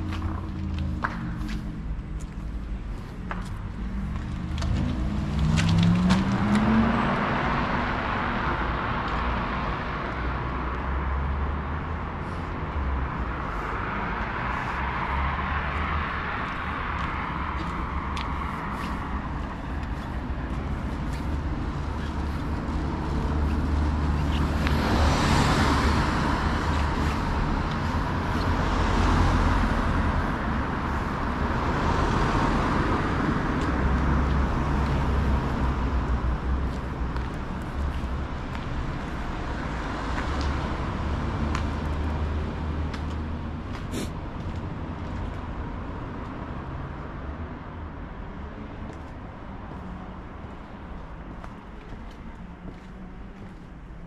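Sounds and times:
cars passing: 0.0 - 54.0
low traffic rumble: 0.0 - 54.0
car engine pulling away: 3.8 - 8.1.

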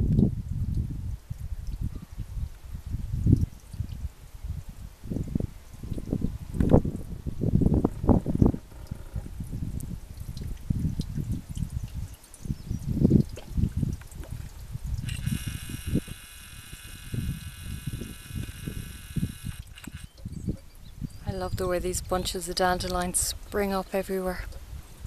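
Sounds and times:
wind buffeting microphone: 0.0 - 25.0
steady high buzzing tone: 15.0 - 20.2.

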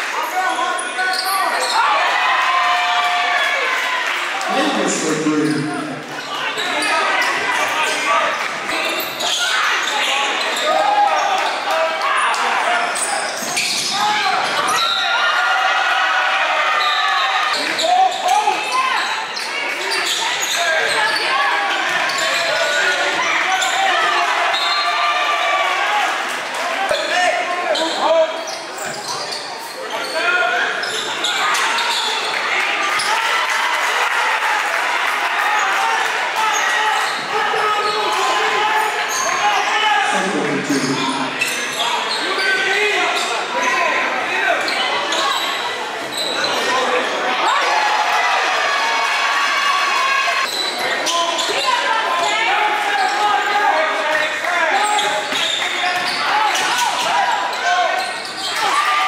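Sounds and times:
indistinct shouts and chatter: 0.0 - 59.0.

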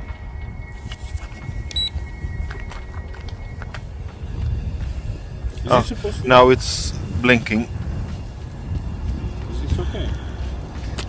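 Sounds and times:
faint steady high tone: 0.0 - 3.9
wind rumble on microphone: 0.0 - 11.0
short high electronic beep: 1.6 - 3.0.

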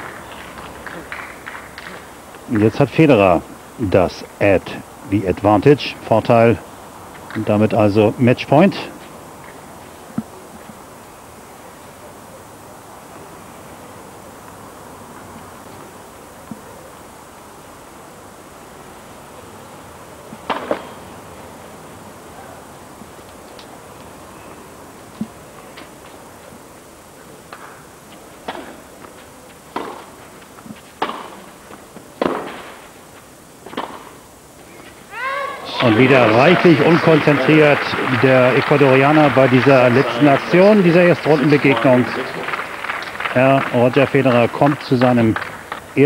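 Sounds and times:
broadcast background hiss: 0.0 - 46.0
tennis ball hit by rackets: 20.4 - 20.9, 28.4 - 28.9, 29.7 - 30.1, 31.0 - 31.4, 32.2 - 32.7, 33.6 - 34.2.

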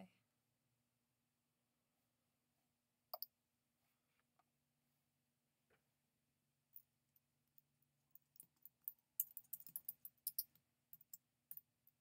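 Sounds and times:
computer keyboard typing: 8.5 - 11.2.

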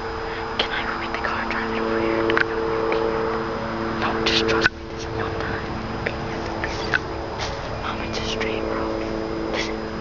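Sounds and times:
low tonal hum and hiss: 0.0 - 10.0
whispery voices: 0.3 - 10.0.

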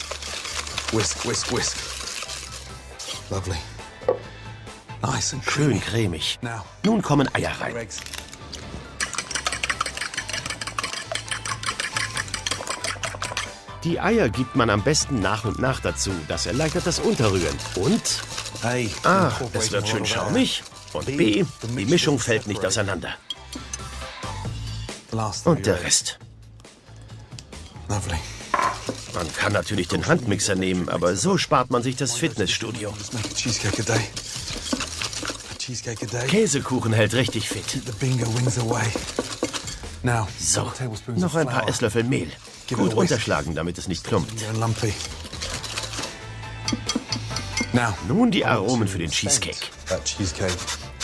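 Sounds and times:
utensil scraping mixing bowl: 0.0 - 3.2, 9.0 - 13.6, 16.1 - 22.9, 28.6 - 40.0, 41.8 - 47.6, 49.3 - 51.0
whisk clicking against bowl: 9.0 - 13.5, 32.0 - 39.8.

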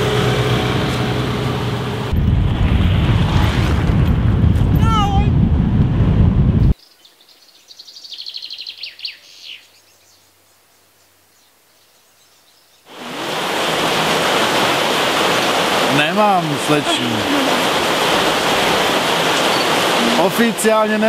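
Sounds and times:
wind buffeting microphone: 2.0 - 6.8
songbird trilling: 6.8 - 10.3, 19.4 - 19.8
steady rushing noise: 12.9 - 21.0.

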